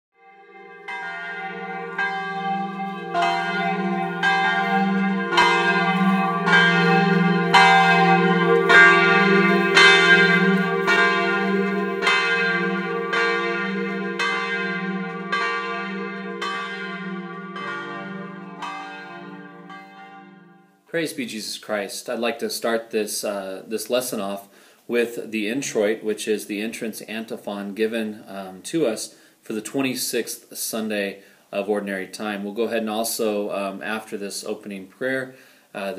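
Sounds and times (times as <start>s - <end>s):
church bells ringing: 0.2s - 20.8s.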